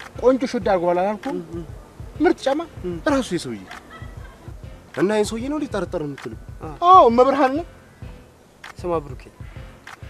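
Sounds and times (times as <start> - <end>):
man speaking animatedly: 0.0 - 3.7, 4.9 - 7.8, 8.8 - 9.4.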